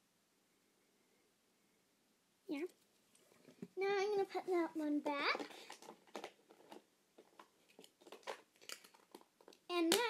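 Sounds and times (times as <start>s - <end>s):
handling clicks and rustles: 4.5s - 10.0s.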